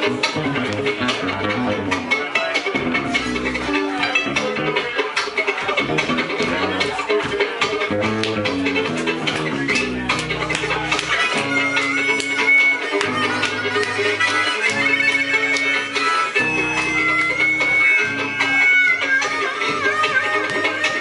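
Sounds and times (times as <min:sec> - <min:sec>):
acoustic guitar: 0:00.0 - 0:21.0
bass guitar: 0:00.0 - 0:21.0
fiddle: 0:00.0 - 0:21.0.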